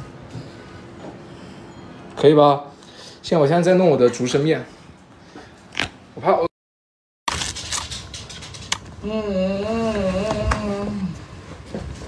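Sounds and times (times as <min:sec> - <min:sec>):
low background hum: 0:00.0 - 0:06.5, 0:07.3 - 0:12.0.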